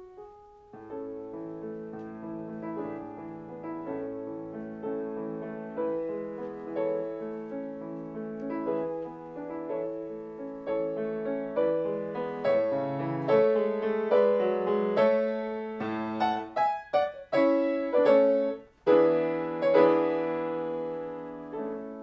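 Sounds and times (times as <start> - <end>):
grand piano playing: 0.0 - 22.0.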